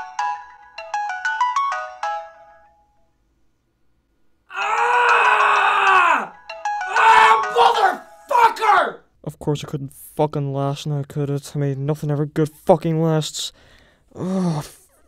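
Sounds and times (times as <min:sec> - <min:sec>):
man groaning: 0:04.5 - 0:08.9, 0:14.1 - 0:14.9.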